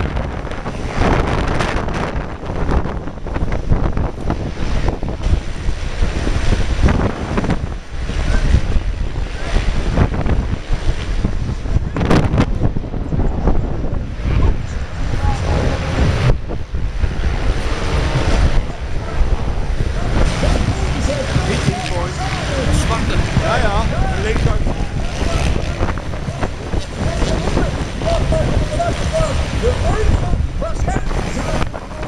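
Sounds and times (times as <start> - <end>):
wind buffeting microphone: 0.0 - 32.0
faint voices: 12.9 - 32.0.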